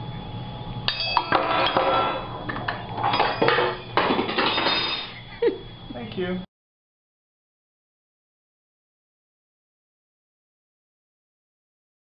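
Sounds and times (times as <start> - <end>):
metal cutlery clattering: 3.0 - 5.2.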